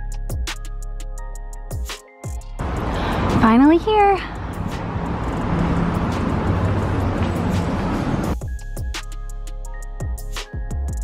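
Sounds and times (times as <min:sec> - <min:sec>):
passing cars rumbling: 0:02.6 - 0:08.4
traffic noise: 0:02.6 - 0:08.4.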